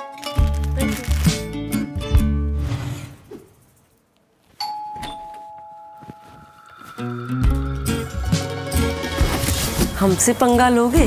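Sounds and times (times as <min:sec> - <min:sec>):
two-tone doorbell chime: 0:04.6 - 0:07.4.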